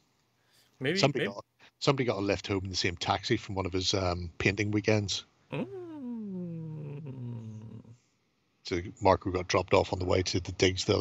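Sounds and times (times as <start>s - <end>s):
man humming or moaning: 5.6s - 8.0s.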